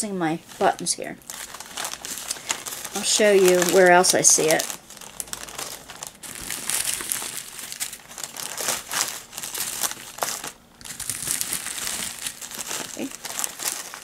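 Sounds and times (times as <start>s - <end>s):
plastic bags crinkling: 0.3s - 14.0s.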